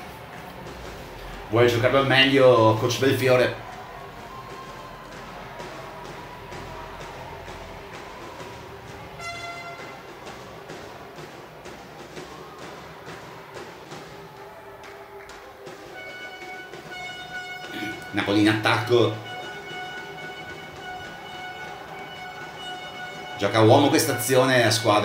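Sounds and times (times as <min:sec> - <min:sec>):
crowd and hall noise: 0:00.0 - 0:25.0.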